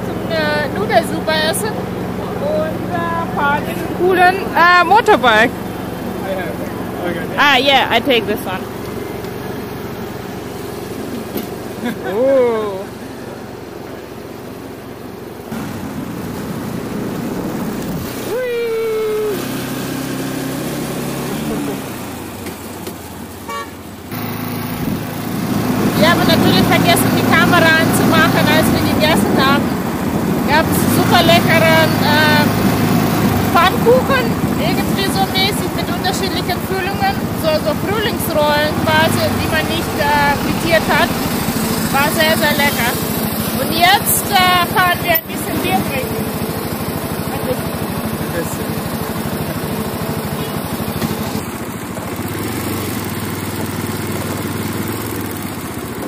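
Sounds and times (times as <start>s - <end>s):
voices shouting and laughing: 0.0s - 9.7s, 10.7s - 13.4s, 18.0s - 19.8s, 30.5s - 42.9s
motorcycle engine running: 0.0s - 56.0s
road noise: 0.0s - 56.0s
vehicle horn: 23.4s - 24.4s, 50.2s - 51.2s.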